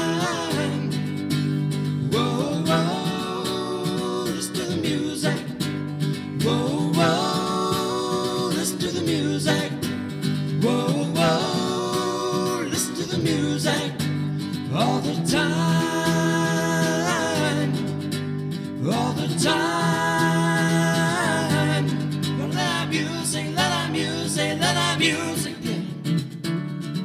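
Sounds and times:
man singing: 0:00.0 - 0:01.1, 0:02.0 - 0:05.6, 0:06.3 - 0:09.9, 0:10.6 - 0:18.0, 0:18.8 - 0:26.1
acoustic guitar strumming: 0:00.0 - 0:27.0.

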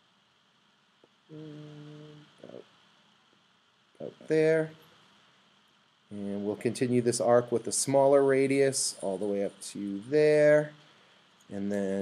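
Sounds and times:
man humming: 0:01.3 - 0:02.6, 0:06.1 - 0:06.6, 0:11.5 - 0:12.0.

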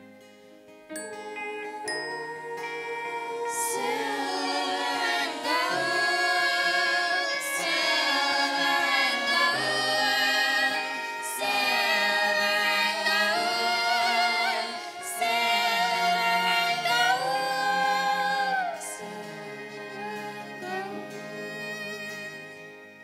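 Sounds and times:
mixed voices singing in harmony: 0:01.3 - 0:23.0.

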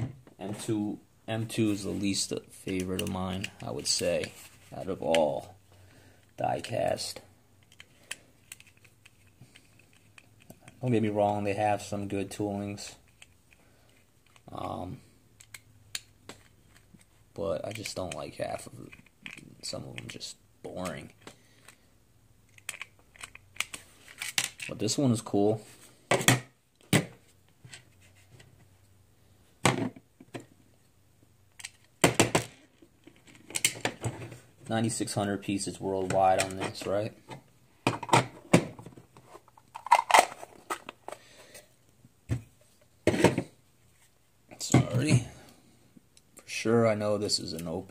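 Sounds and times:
hard plastic being handled: 0:07.6 - 0:11.5.

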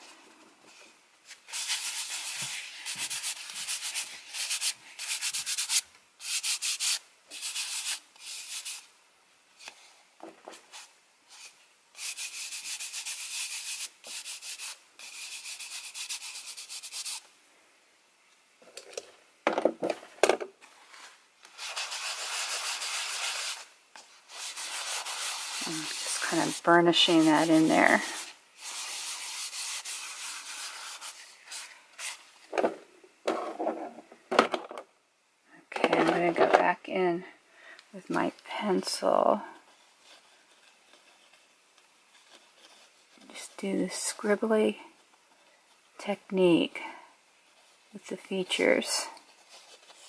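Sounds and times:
charcoal scribbling on rough paper: 0:01.5 - 0:08.8, 0:11.3 - 0:17.2, 0:21.6 - 0:32.2, 0:49.2 - 0:50.0.

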